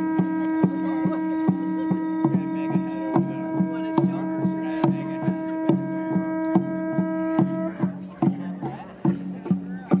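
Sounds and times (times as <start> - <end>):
conch shell trumpet note: 0.0 - 7.9
drum beating steadily: 0.0 - 10.0.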